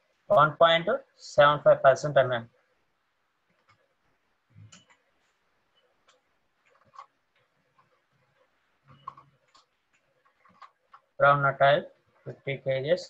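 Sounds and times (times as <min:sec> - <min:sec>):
computer keyboard clicks: 0:06.0 - 0:08.0, 0:08.9 - 0:11.1.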